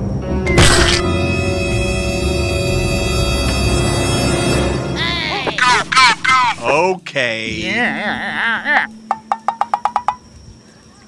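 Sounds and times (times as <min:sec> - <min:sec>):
hollow wood block knocks: 0:09.1 - 0:10.2.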